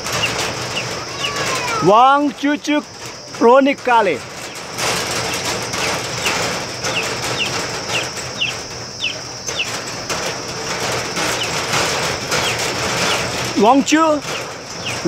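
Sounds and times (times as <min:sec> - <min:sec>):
small bird chirping: 0:00.0 - 0:03.4, 0:04.1 - 0:15.0
steady background hiss: 0:00.0 - 0:15.0.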